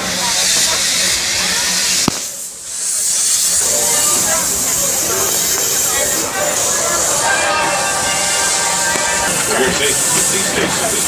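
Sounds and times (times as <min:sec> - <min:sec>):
faint voices: 0:00.0 - 0:11.0
steam train hissing: 0:00.0 - 0:11.0.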